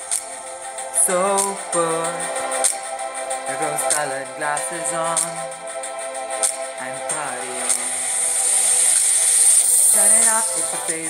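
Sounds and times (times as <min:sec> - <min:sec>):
hissy noise swell: 0:00.0 - 0:11.0.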